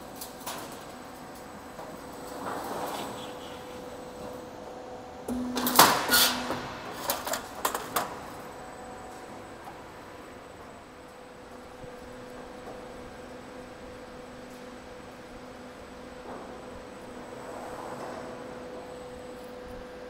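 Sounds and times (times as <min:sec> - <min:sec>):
faint machine hum: 0:00.0 - 0:20.0.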